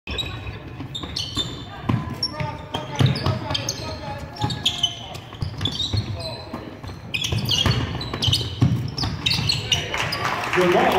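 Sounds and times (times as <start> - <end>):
sneakers squeaking: 0.1 - 10.4
players' voices echoing: 0.3 - 10.9
basketball bouncing on hardwood floor: 0.7 - 9.8.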